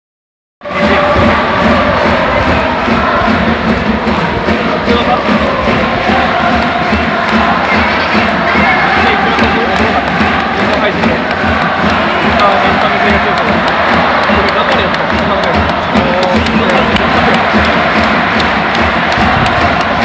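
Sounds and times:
stadium crowd cheering and chanting: 0:00.6 - 0:20.0.

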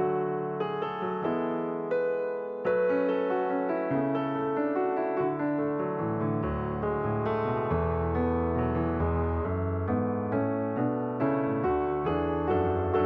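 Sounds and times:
background piano music: 0:00.0 - 0:13.0.

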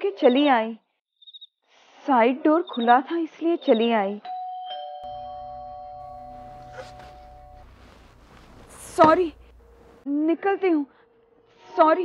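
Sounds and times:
two-note chime: 0:05.0 - 0:09.8
low hum: 0:05.0 - 0:10.0.

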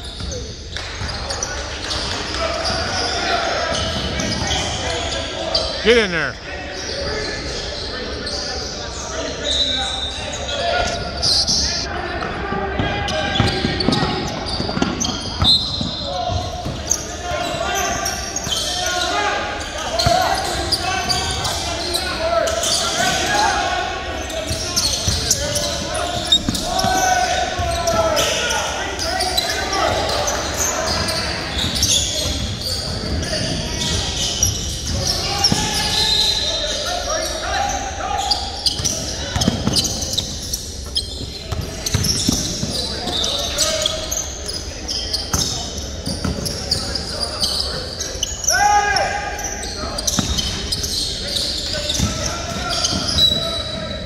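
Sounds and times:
indistinct voices: 0:05.8 - 0:06.4.

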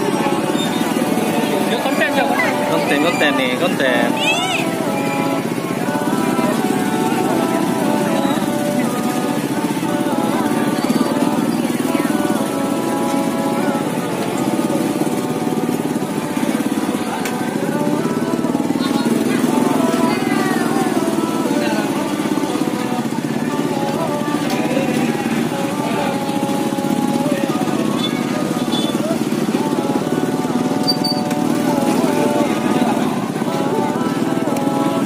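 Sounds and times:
background music: 0:00.0 - 0:35.0
background voices: 0:00.0 - 0:35.0
small motorcycle engine running: 0:00.0 - 0:35.0.

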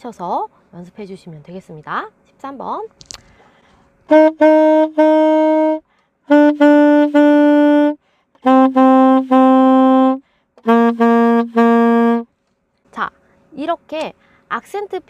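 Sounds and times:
solo saxophone: 0:04.1 - 0:12.3.

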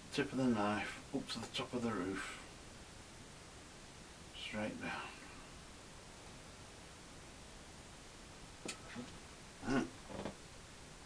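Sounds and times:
man humming or grunting: 0:09.0 - 0:10.0.

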